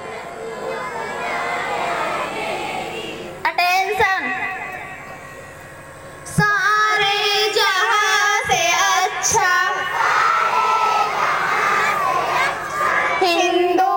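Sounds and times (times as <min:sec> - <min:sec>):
children singing in unison: 0:08.0 - 0:13.9.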